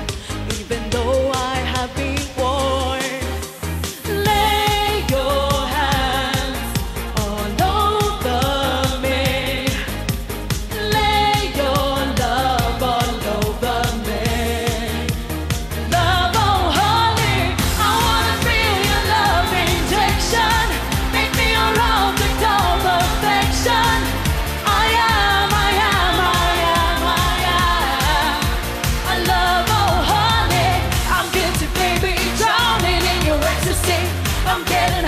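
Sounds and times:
up-tempo backing track: 0.0s - 35.0s
woman singing lead: 0.0s - 35.0s.

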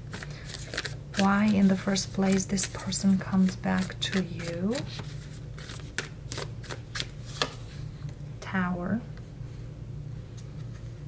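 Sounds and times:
cards being shuffled: 0.0s - 7.6s.

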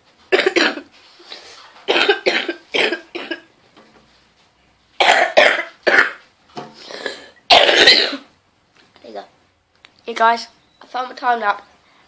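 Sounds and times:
boy coughing: 0.3s - 0.9s, 1.9s - 3.5s, 5.0s - 6.2s, 6.8s - 8.3s.

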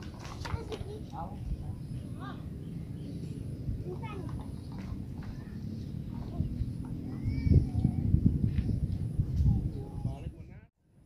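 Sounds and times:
faint children talking: 0.0s - 10.6s
steady low rumble: 0.9s - 10.5s.

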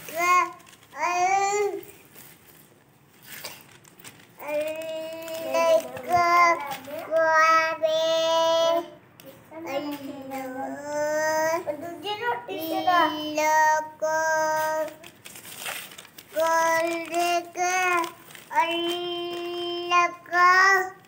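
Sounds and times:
child singing: 4.4s - 15.0s, 16.3s - 21.0s.

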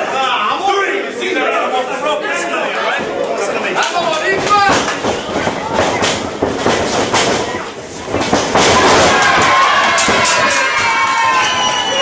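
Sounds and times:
crowd chatter: 0.0s - 12.0s
bodies thudding on wrestling ring: 4.4s - 10.5s
crowd shouting and cheering: 8.5s - 12.0s.

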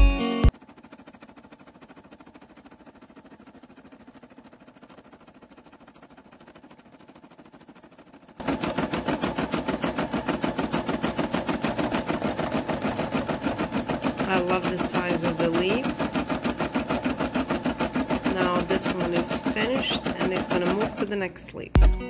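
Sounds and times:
embroidery machine stitching: 0.5s - 21.3s.

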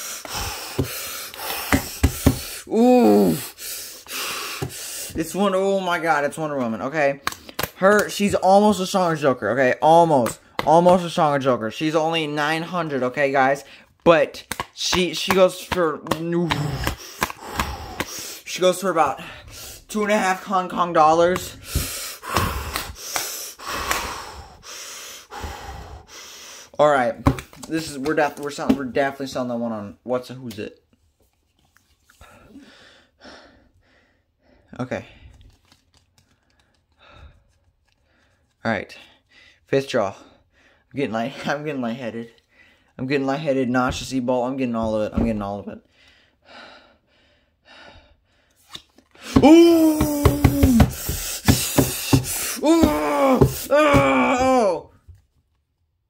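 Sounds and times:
person breathing noisily: 0.0s - 5.2s, 16.5s - 18.5s, 21.4s - 26.8s, 49.2s - 53.7s.

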